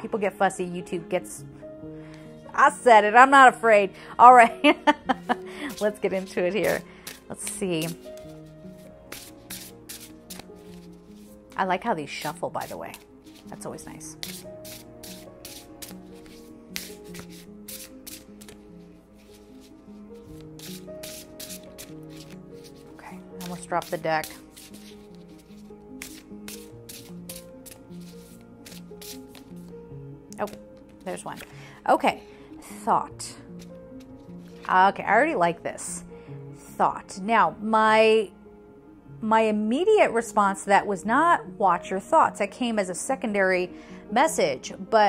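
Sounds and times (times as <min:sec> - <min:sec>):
soft music of held tones: 0:00.0 - 0:45.0
card deck shuffling: 0:05.2 - 0:11.4, 0:12.2 - 0:29.7, 0:30.3 - 0:31.6, 0:33.6 - 0:34.7.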